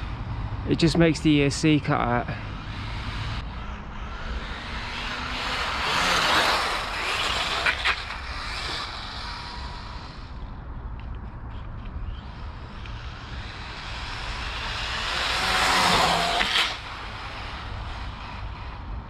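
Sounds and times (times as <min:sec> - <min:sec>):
electric rc car driving past: 0:00.0 - 0:19.0.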